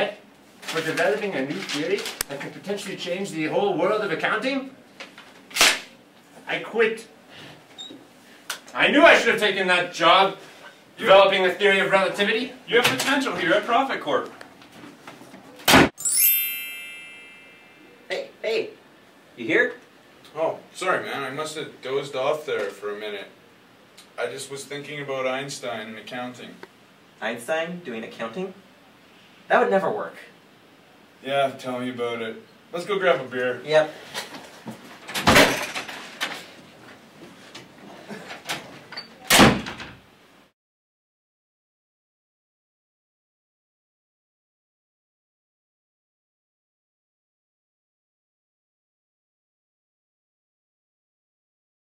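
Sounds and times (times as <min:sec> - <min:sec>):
bright bell-like chime run: 0:16.0 - 0:18.0
door shutting with thud: 0:35.1 - 0:36.0, 0:39.3 - 0:40.0.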